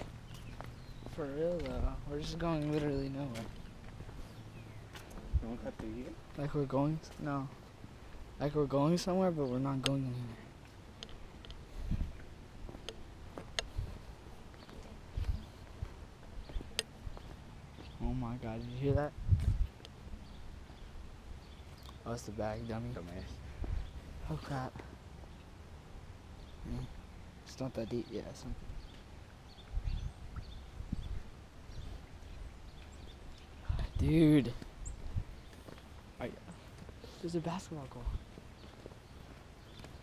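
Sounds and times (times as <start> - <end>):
footsteps on wet concrete: 0.0 - 8.3, 9.7 - 18.2, 34.4 - 40.0.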